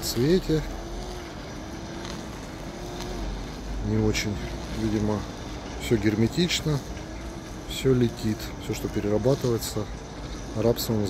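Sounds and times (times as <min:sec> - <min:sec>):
machinery humming: 0:00.0 - 0:11.0.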